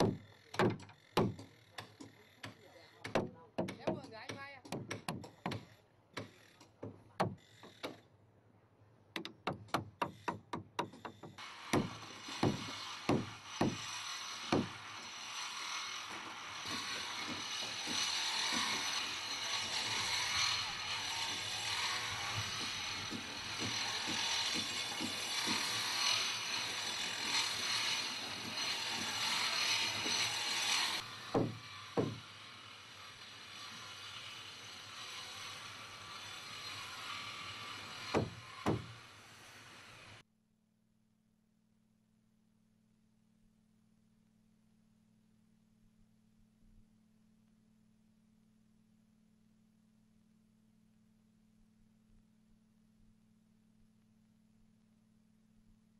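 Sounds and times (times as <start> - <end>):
hammer striking chisel: 0.0 - 8.0, 9.2 - 15.2, 16.6 - 32.3, 38.0 - 39.1.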